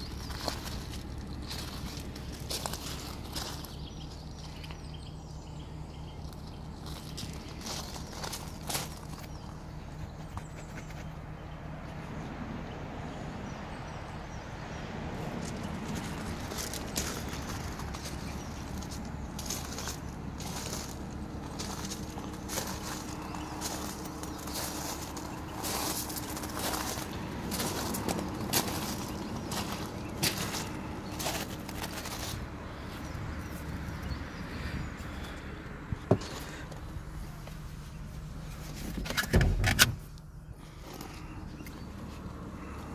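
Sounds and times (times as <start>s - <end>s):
footsteps crunching on gravel: 0.0s - 5.0s, 6.2s - 11.0s, 15.4s - 34.2s
steady low rumble: 0.0s - 42.9s.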